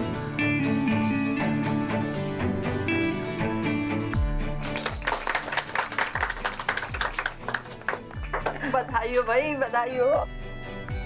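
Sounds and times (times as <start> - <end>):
background music with deep drum beat: 0.0 - 5.4, 6.1 - 11.0
people clapping: 4.7 - 8.9.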